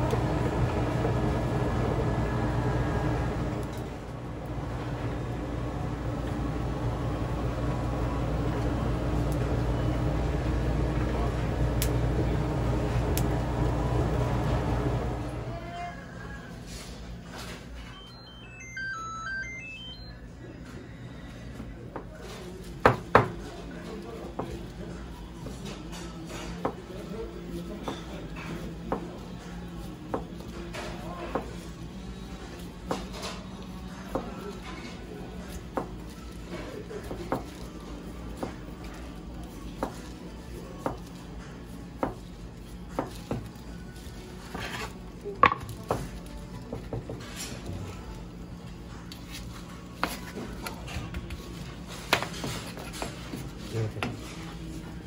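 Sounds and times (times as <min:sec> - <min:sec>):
steady low hum: 0:00.0 - 0:17.2
electronic chime melody: 0:17.9 - 0:20.3.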